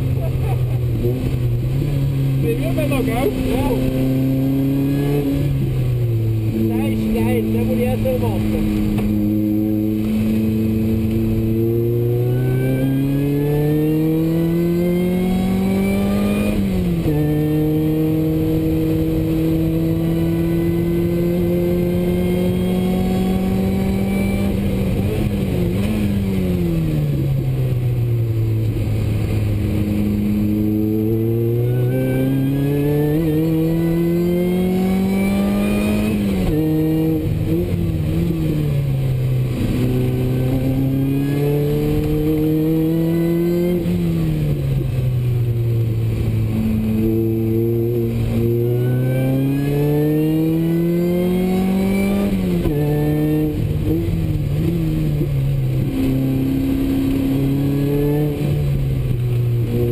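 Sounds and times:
car engine revving inside cabin: 0.0s - 27.4s, 28.4s - 38.8s, 39.4s - 44.9s, 45.8s - 59.9s.

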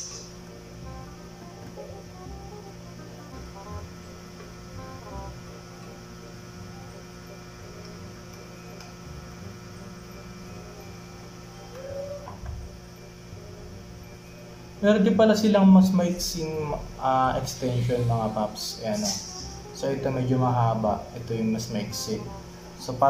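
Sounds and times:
faint background music: 0.0s - 23.0s
low electrical hum: 0.0s - 23.0s.

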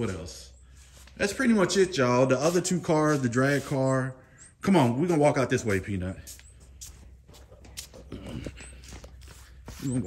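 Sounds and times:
footsteps on grass: 8.8s - 10.0s.

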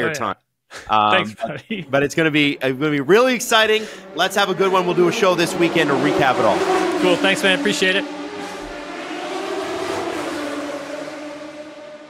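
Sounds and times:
race car engine drone: 2.2s - 12.0s.

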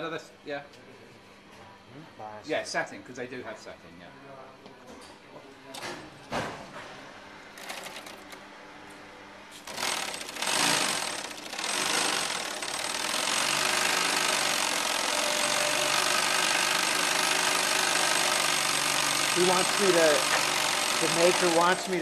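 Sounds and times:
industrial sewing machine stitching: 7.6s - 8.4s, 9.6s - 22.0s.

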